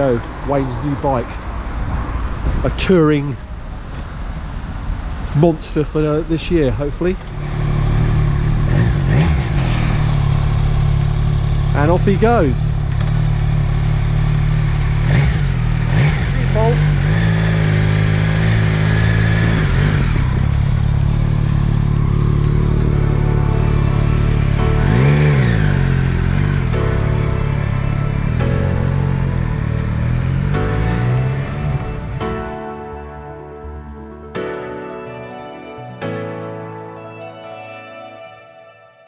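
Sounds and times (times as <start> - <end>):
motorcycle engine idling: 7.2 - 26.7
background music: 7.3 - 39.0.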